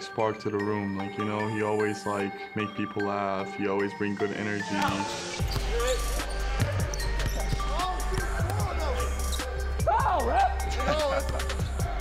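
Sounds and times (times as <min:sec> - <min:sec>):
background music with deep bass: 0:00.0 - 0:12.0
voices and laughter: 0:07.9 - 0:12.0.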